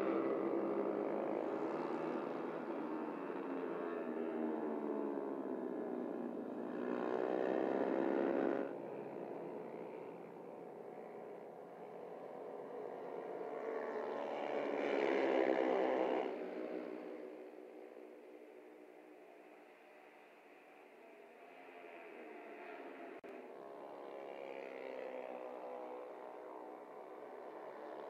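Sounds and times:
racing motorcycles at high revs: 0.1s - 8.8s.

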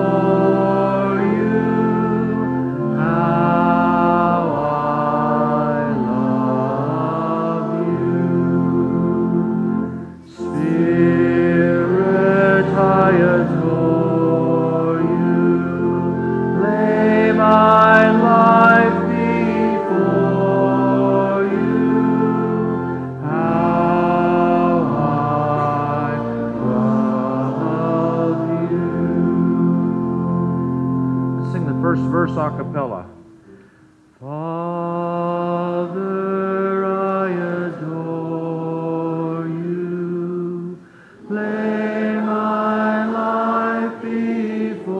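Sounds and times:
congregation singing a hymn: 0.0s - 33.0s, 34.2s - 44.9s
man singing close to microphone: 34.2s - 40.7s.

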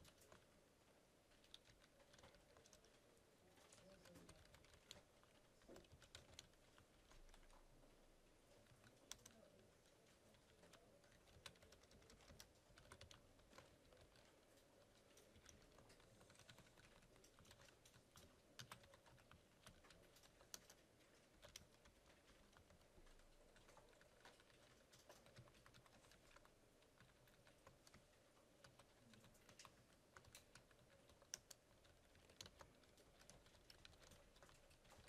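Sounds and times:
computer keyboard typing: 0.0s - 0.5s, 1.3s - 7.7s, 8.5s - 35.0s.

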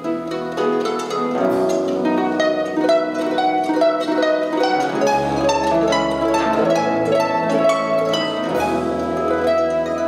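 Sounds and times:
harp plucked notes: 0.0s - 10.0s
strings playing: 0.0s - 10.0s.

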